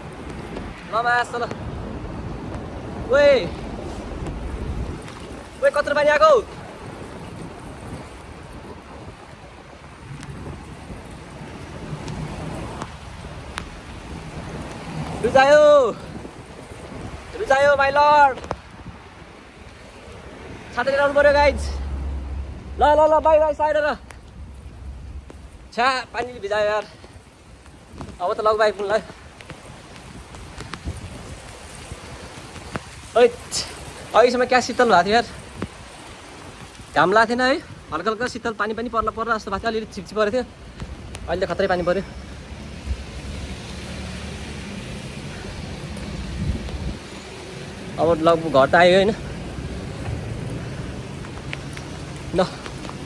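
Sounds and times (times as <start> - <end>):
faint traffic hum: 0.0 - 53.0
rain falling: 0.0 - 53.0
wind buffeting microphone: 0.0 - 53.0
light ticks: 12.0 - 13.9, 51.2 - 53.0.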